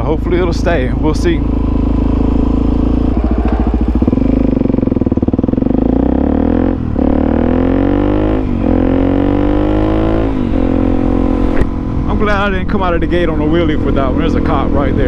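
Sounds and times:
motorcycle engine accelerating: 0.0 - 15.0.

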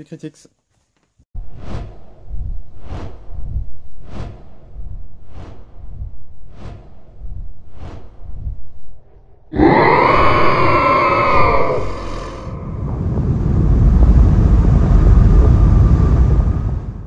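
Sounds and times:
deep low rumble: 1.4 - 17.0
creature-like roar: 9.5 - 12.9.

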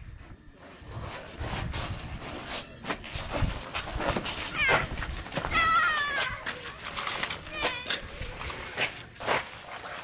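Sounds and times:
high-pitched cries: 5.5 - 6.8.

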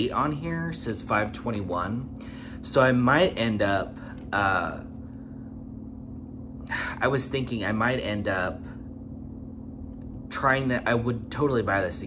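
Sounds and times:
man talking: 0.0 - 5.0, 6.7 - 8.7, 10.3 - 12.0
low room noise hum: 0.0 - 12.0.

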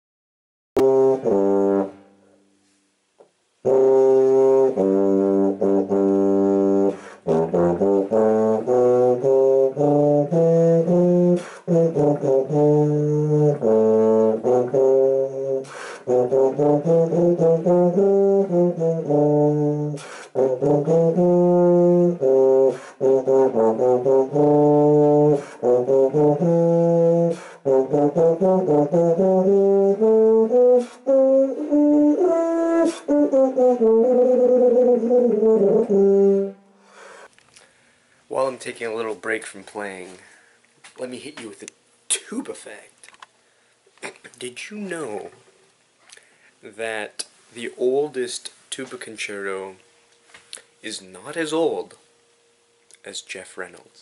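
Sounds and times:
solo tuba playing: 0.8 - 2.4, 3.6 - 36.9.

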